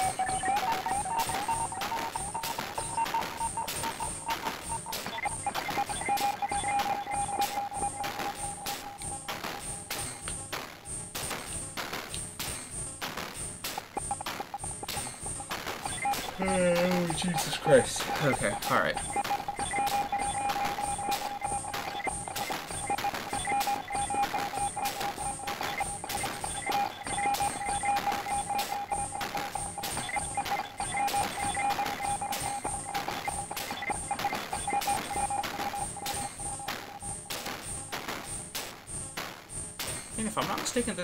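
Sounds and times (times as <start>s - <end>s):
rhythmic synthesizer percussion: 0.0s - 41.0s.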